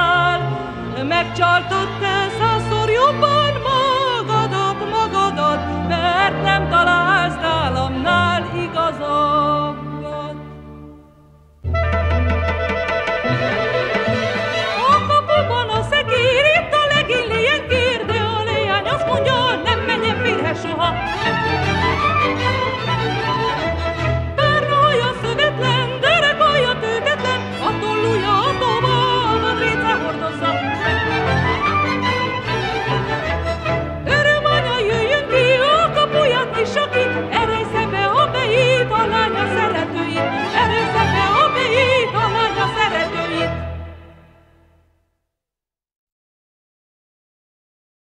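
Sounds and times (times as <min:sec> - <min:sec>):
woman singing folk song: 0:00.0 - 0:10.6, 0:14.7 - 0:21.9, 0:24.4 - 0:30.8, 0:34.0 - 0:43.6
string band with pulsing bass: 0:00.0 - 0:44.6.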